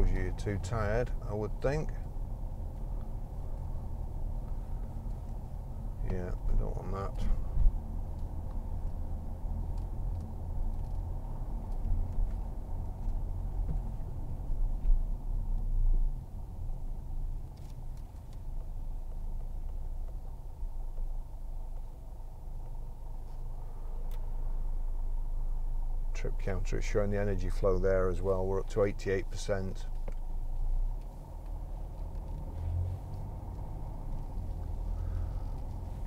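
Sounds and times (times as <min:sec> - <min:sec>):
car cabin rumble while driving: 0:00.0 - 0:36.0.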